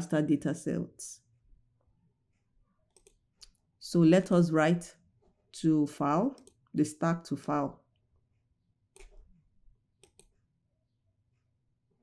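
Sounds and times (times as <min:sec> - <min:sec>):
faint computer clicks: 0:02.9 - 0:03.6, 0:10.0 - 0:10.4.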